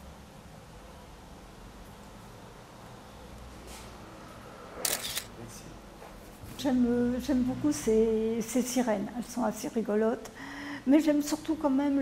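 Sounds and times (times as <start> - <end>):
camera shutter snap: 4.8 - 5.3.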